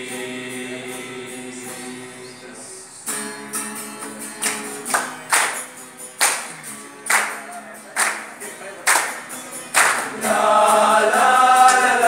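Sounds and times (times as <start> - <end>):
male choir singing: 0.0 - 3.0, 9.8 - 12.0
acoustic guitar strumming: 0.0 - 12.0
hand claps: 3.9 - 10.2, 11.6 - 12.0.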